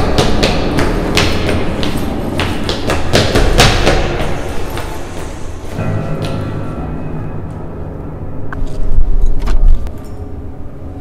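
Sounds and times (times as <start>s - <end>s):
low rumble: 5.8s - 11.0s.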